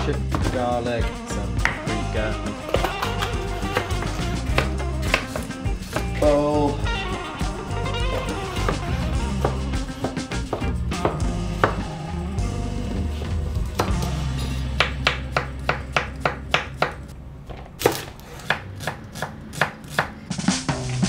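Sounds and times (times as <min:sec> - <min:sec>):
knife chopping on wooden board: 0:02.7 - 0:06.1, 0:08.1 - 0:11.9.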